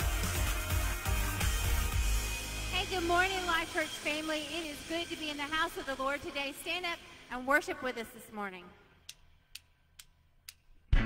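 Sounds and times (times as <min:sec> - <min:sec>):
band with guitar and drums: 0:00.0 - 0:02.5
sharp count-in clicks: 0:09.0 - 0:10.8.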